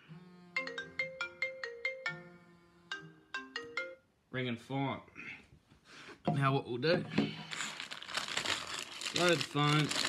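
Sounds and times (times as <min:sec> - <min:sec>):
phone ringtone chiming melody: 0:00.6 - 0:04.1.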